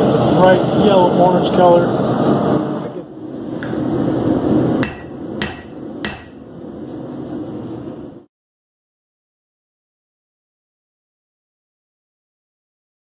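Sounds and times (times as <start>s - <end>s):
gas burner roar: 0.0s - 8.3s
hammer strikes on metal: 4.8s - 6.4s.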